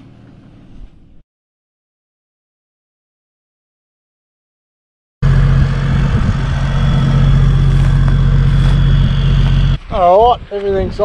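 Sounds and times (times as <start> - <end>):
vehicle engine running: 5.2 - 9.8.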